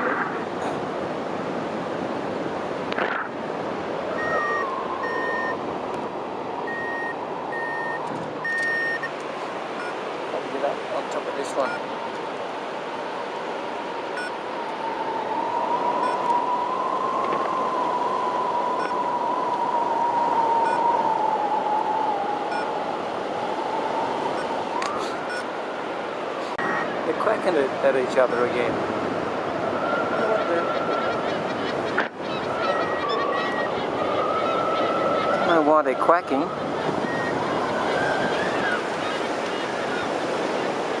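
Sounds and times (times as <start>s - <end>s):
wind rushing over camera: 0.0s - 41.0s
high whistle-like tone: 4.2s - 5.6s, 6.7s - 9.1s, 16.0s - 16.5s, 20.6s - 21.0s, 37.1s - 37.4s.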